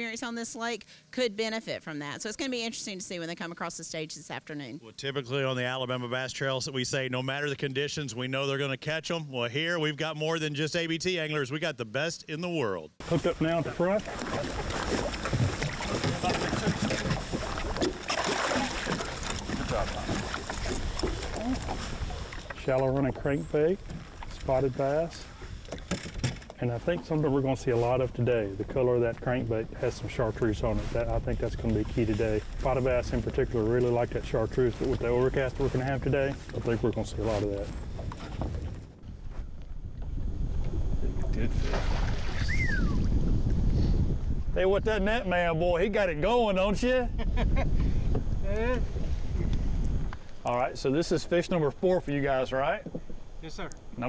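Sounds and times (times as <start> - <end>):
wind buffeting microphone: 13.3 - 54.0
whistle falling in pitch: 42.3 - 43.1.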